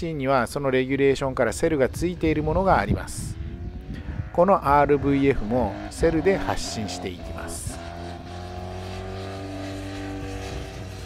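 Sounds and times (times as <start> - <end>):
motorcycle engine running: 2.4 - 11.0.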